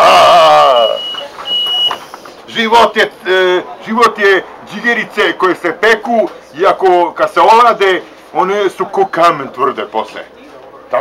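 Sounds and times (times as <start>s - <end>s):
man's drawn-out vocal cry: 0.0s - 1.0s
bus electronic beeper: 0.7s - 2.2s.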